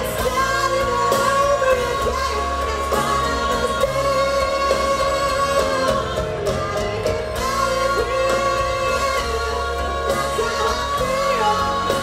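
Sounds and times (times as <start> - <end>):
backing voices singing: 0.0 - 12.0
live pop band playing: 0.0 - 12.0
person singing lead vocal: 0.0 - 12.0.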